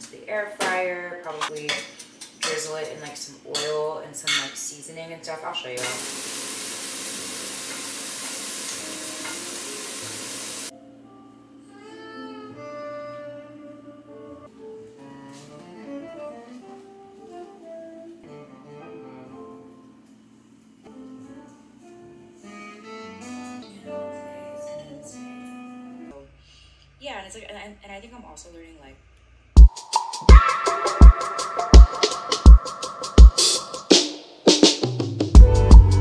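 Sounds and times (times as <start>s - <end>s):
food sizzling in a frying pan: 5.8s - 10.7s
instrumental background music: 8.6s - 26.4s, 29.6s - 36.0s.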